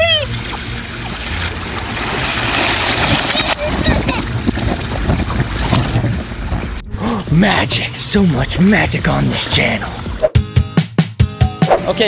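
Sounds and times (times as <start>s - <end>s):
pool water splashing: 0.0s - 7.2s, 7.9s - 10.3s
wind on microphone: 3.0s - 6.9s.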